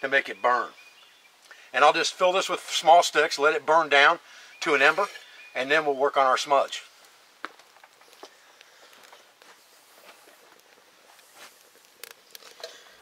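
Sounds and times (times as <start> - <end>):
fire crackling: 0.0 - 13.0.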